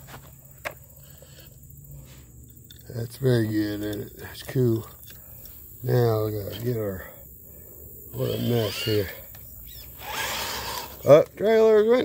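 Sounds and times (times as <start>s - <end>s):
toy truck motor whirring: 8.2s - 11.2s.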